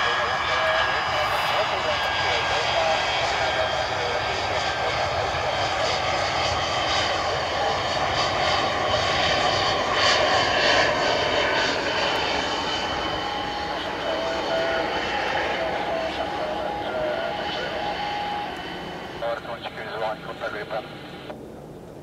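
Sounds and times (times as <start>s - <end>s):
loud jet rush: 0.0s - 21.2s
jet engine whine: 0.0s - 22.0s.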